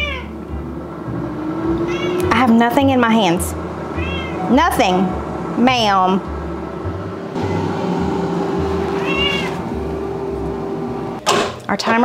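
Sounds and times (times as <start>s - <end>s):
cat meowing: 0.0s - 0.4s, 1.9s - 2.3s, 4.0s - 4.4s, 9.0s - 9.6s
low background hum: 0.0s - 12.0s.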